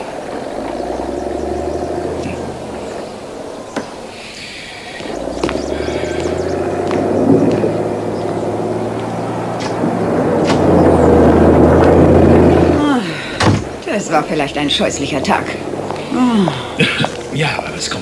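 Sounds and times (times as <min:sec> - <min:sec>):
bulldozer diesel engines rumbling: 0:00.0 - 0:18.0.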